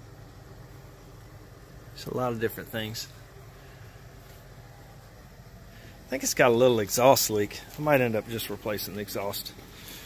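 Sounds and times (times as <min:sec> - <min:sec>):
faint car engine idling: 0:00.0 - 0:10.0.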